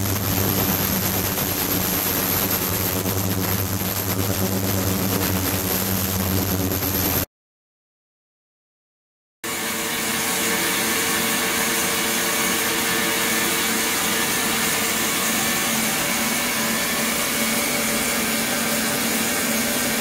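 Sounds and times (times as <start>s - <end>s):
ultrasonic cleaner hiss and hum: 0.0s - 7.2s, 9.5s - 20.0s.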